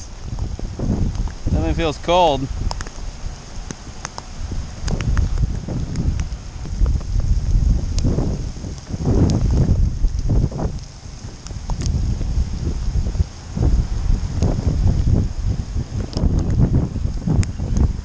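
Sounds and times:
wind buffeting microphone: 0.0 - 18.0.

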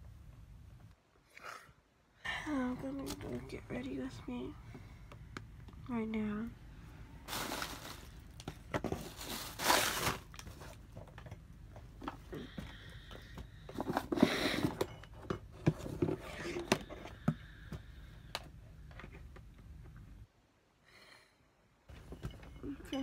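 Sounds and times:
rustling and crinkling: 7.2 - 17.8.

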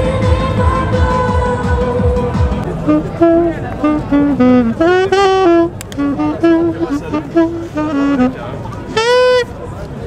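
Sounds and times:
street crowd voices: 0.0 - 10.0
saxophone playing: 2.6 - 9.7.

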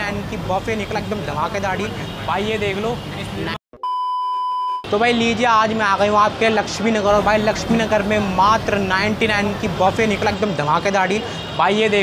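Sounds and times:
man speaking: 0.0 - 3.6, 4.9 - 12.0
high electronic beep: 3.8 - 4.9.

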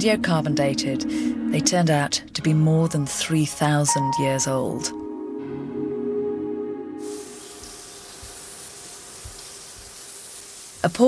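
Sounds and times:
steady water spray hiss: 7.0 - 11.0.

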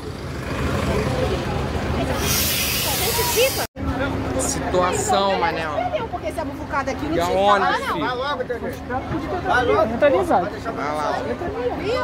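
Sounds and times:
crowd voices: 0.4 - 12.0
compressed air hiss: 2.2 - 3.7.

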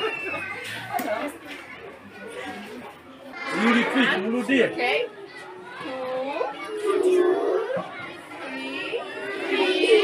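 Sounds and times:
children reciting aloud: 0.0 - 10.0.

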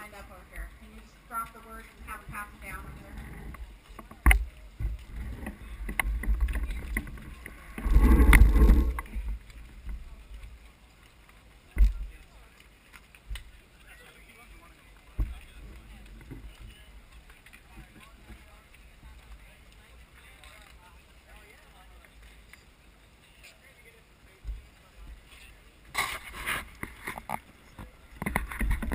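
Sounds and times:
wind rumble: 0.0 - 10.6.

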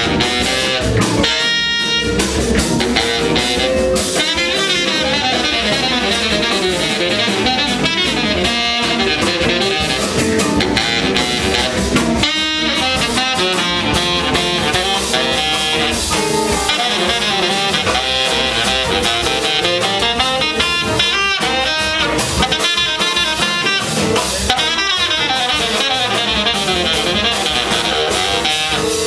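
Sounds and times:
baritone saxophone lead: 0.0 - 29.0
soul jazz band playing: 0.0 - 29.0.

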